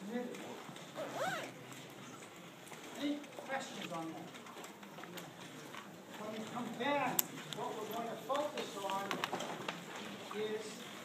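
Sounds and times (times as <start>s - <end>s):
faint small clicks and rustles: 0.1s - 11.0s.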